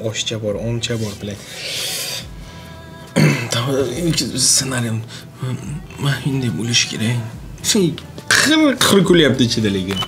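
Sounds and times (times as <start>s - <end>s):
loud wordless vocal sound: 0.0s - 10.0s
man breathing: 1.4s - 3.0s
man speaking: 3.3s - 10.0s.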